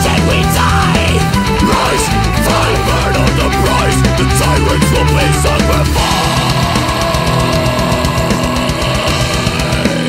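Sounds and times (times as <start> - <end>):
distorted guitars: 0.0 - 10.0
rapid drumming: 0.0 - 10.0.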